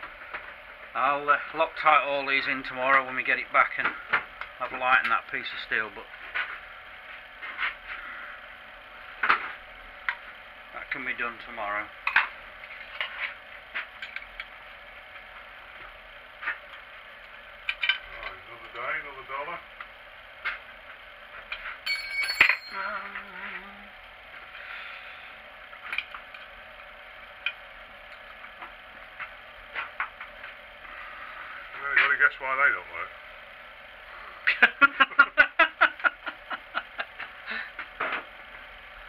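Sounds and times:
metal tools clinking: 21.9 - 23.2.

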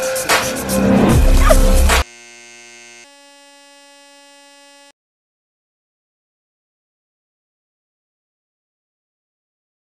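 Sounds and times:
electronic buzzing tone: 1.1 - 5.0.

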